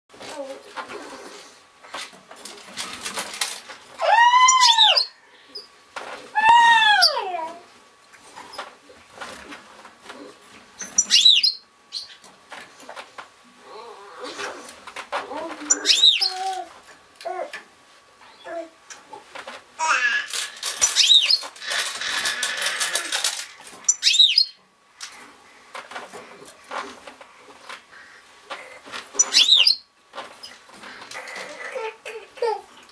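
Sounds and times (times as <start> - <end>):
birds fluttering and rustling: 0.1 - 32.9
bird chirp: 10.8 - 12.2, 15.6 - 16.4, 20.8 - 21.5, 23.9 - 24.6, 29.2 - 30.6.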